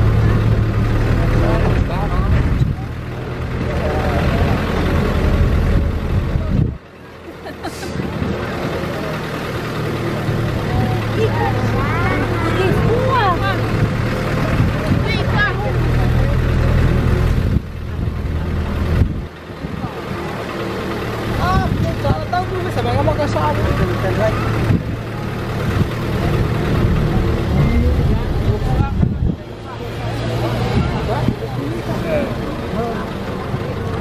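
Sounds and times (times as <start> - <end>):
people's voices: 0.0 - 34.0
truck engine running: 0.0 - 34.0.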